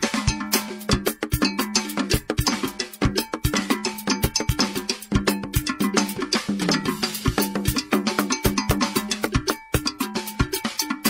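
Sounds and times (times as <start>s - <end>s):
sharp percussion strikes: 0.0s - 11.0s.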